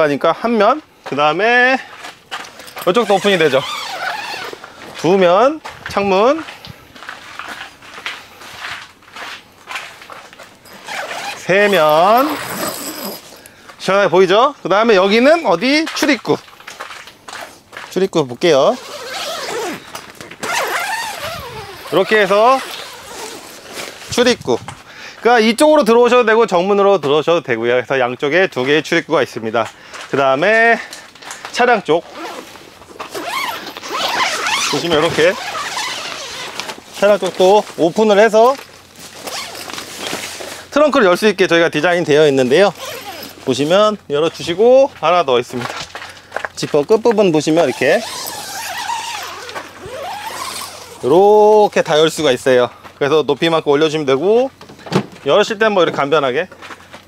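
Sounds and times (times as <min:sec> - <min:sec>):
fabric rustling: 0:02.0 - 0:13.4, 0:18.7 - 0:24.4, 0:32.0 - 0:40.8, 0:47.6 - 0:51.2
zipper being pulled open: 0:02.8 - 0:04.7, 0:10.7 - 0:13.5, 0:18.6 - 0:24.0, 0:32.1 - 0:37.4, 0:39.2 - 0:40.4, 0:42.5 - 0:43.5, 0:47.6 - 0:51.1
fabric door panel rustling: 0:32.4 - 0:40.4.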